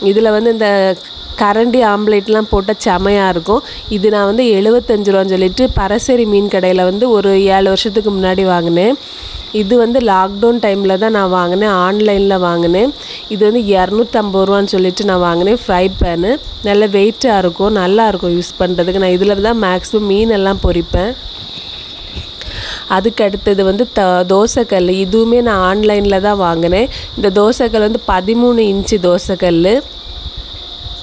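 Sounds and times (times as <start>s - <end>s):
person talking: 0.0s - 9.0s, 9.6s - 29.8s
crickets chirring: 0.0s - 31.0s.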